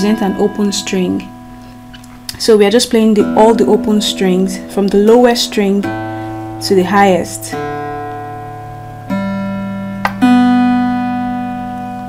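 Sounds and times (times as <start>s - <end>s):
guitar strings plucked: 0.0s - 12.0s.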